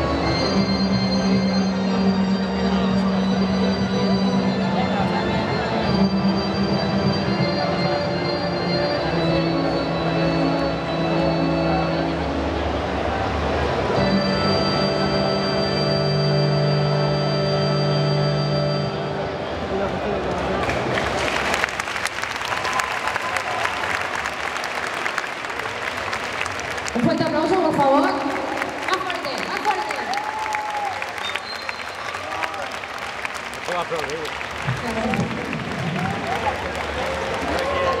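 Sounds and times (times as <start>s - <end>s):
electronic keyboard chords: 0.0s - 20.3s
audience applauding: 19.8s - 38.0s.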